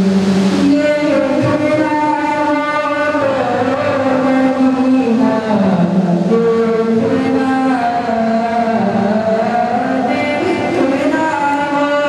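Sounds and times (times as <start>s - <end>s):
man singing into a microphone: 0.5s - 12.0s.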